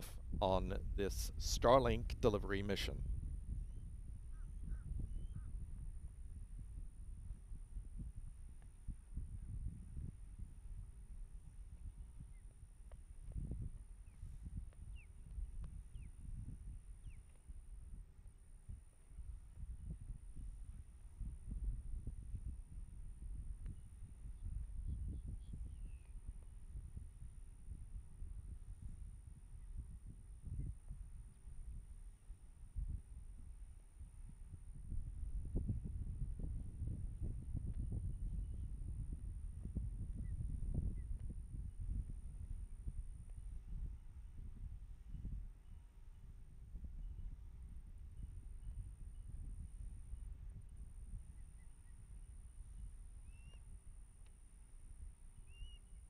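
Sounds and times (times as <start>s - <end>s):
faint high-pitched whine: 0.0s - 56.0s
gusty wind on microphone: 0.0s - 56.0s
faint bird chirps: 3.6s - 5.6s, 23.7s - 26.2s, 51.3s - 53.8s, 55.4s - 56.0s.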